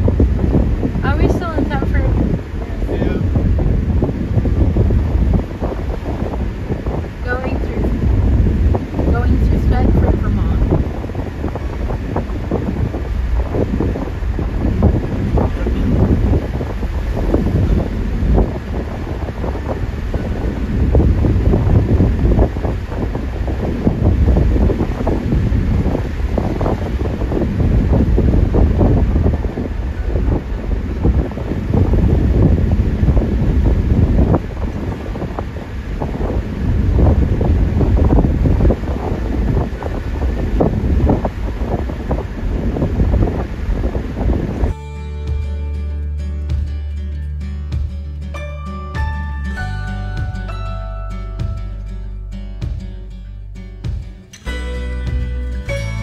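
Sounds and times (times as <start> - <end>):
wind buffeting microphone: 0.0 - 47.1, 52.6 - 53.0
vehicle driving rumble: 0.0 - 56.0.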